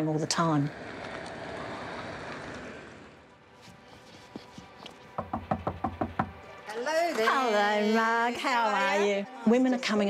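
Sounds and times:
car tyre and road noise: 0.0 - 5.3.

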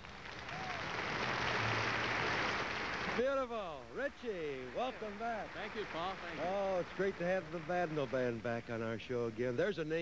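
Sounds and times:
audience applauding: 0.0 - 3.3, 4.7 - 8.7.

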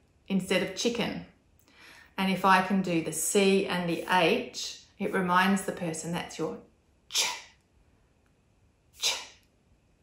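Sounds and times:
woman saying ch sound: 7.1 - 7.6, 9.0 - 9.4.

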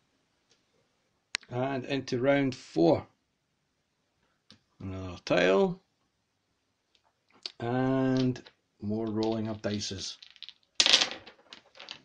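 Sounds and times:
dice clattering on wooden table: 7.5 - 12.0.

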